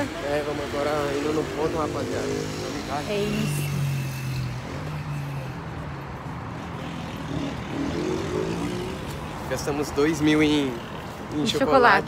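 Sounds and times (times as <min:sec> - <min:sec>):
road noise: 0:00.0 - 0:12.0
vehicle engine humming: 0:00.0 - 0:12.0.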